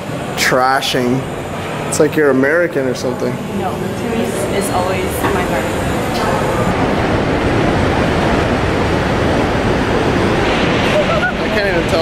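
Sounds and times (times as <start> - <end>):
river rapids churning: 0.0 - 12.0
waterfall rushing: 0.0 - 12.0.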